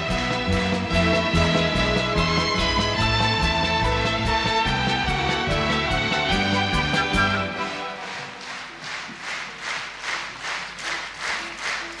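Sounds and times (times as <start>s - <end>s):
audience clapping in rhythm: 0.0s - 12.0s.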